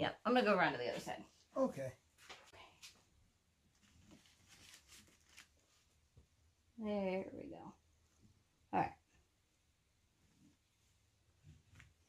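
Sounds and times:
soft rustles of gloved hands: 0:03.7 - 0:06.0.

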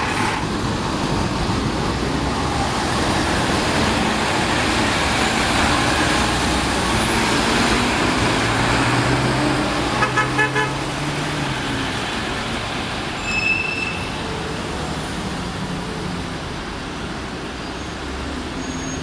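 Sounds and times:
bus engine driving off: 0:00.0 - 0:19.0
vehicle horn toots: 0:10.0 - 0:10.8.

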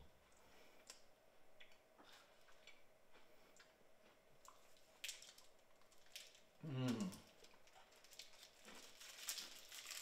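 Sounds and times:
faint clicks and mouth noises: 0:00.2 - 0:08.4.

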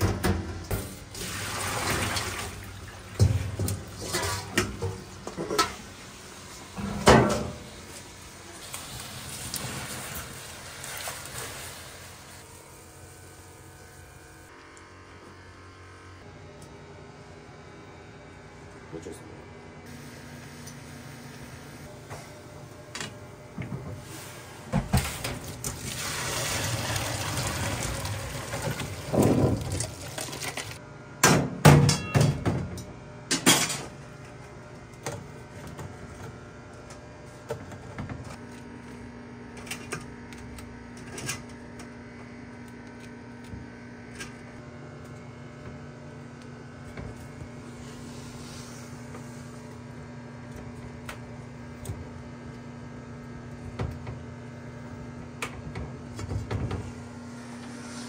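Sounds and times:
boiling water pouring into strainer: 0:01.2 - 0:02.7, 0:25.7 - 0:30.8.

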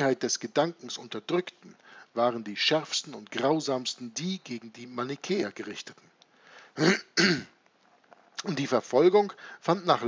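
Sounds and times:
man clearing his throat: 0:06.8 - 0:07.6.

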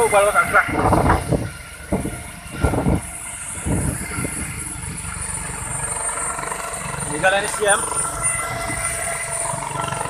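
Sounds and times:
helicopter turbine whine: 0:00.0 - 0:10.0.

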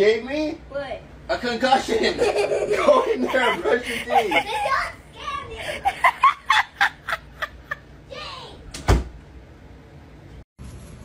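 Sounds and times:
person speaking: 0:01.7 - 0:05.9
bursts of laughter: 0:01.9 - 0:07.8
door thumping against head: 0:08.7 - 0:09.2.

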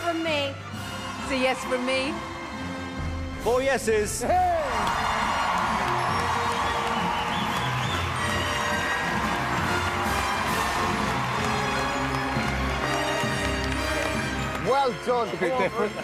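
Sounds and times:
loud music: 0:00.8 - 0:16.0
audience cheering and applauding: 0:04.2 - 0:16.0.

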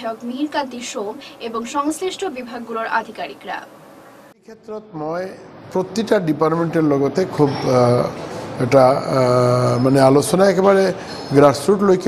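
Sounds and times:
man speaking: 0:04.4 - 0:12.0.

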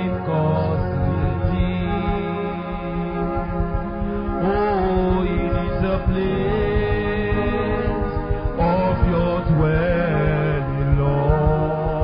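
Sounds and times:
person singing long notes: 0:00.0 - 0:12.0
sustained held chords: 0:00.0 - 0:12.0.

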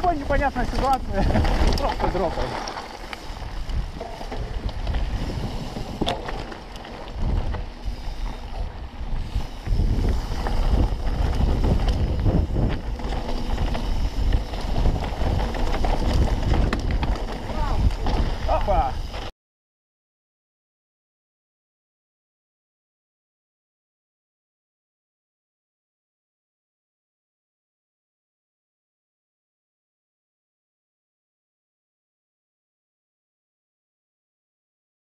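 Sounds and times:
wind buffeting microphone: 0:00.0 - 0:02.5, 0:03.2 - 0:19.2
bike rumbling and rattling: 0:00.0 - 0:19.3.

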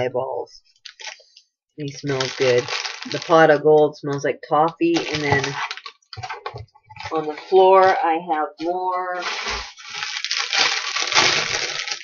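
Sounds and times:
packaging rustling and crinkling: 0:00.8 - 0:03.6, 0:04.8 - 0:08.0, 0:09.0 - 0:12.0.

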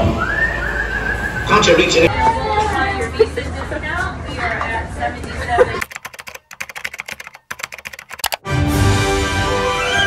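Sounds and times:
keyboard typing clicks: 0:05.8 - 0:08.4
music: 0:08.4 - 0:10.0.

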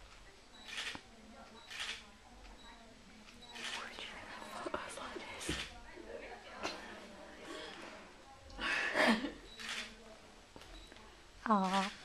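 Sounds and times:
person whispering: 0:03.7 - 0:05.5.

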